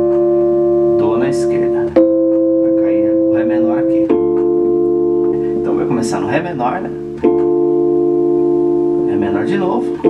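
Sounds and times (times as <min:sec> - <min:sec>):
keyboard chord: 0:00.0 - 0:10.0.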